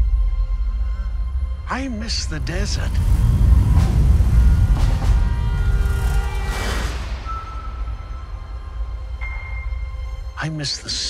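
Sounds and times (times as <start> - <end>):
trailer music: 0.0 - 10.5
low rumble of vehicle engines: 2.0 - 8.7.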